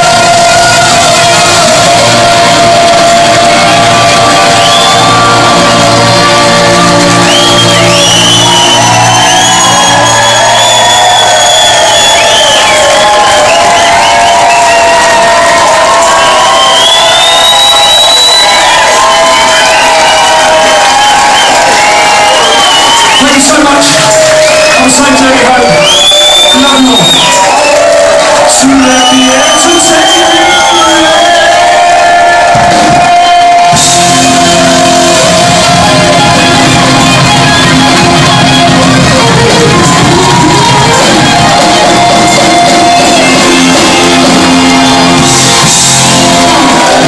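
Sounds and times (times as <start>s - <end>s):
live band holding chord: 0.0s - 17.7s, 29.5s - 47.0s
crowd cheering and whooping: 0.0s - 47.0s.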